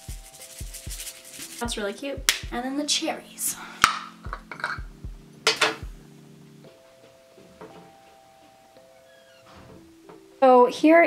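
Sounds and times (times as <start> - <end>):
soft background music: 0.0 - 11.0
glass jar and bowl clinks: 4.4 - 4.8.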